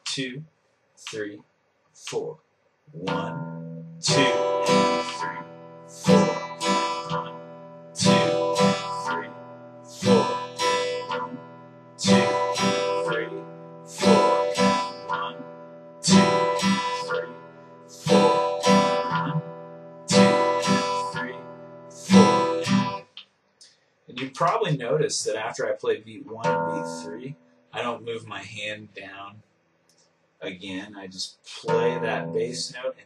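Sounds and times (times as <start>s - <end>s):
acoustic guitar strumming: 3.0s - 23.1s, 26.4s - 28.1s, 31.6s - 32.8s.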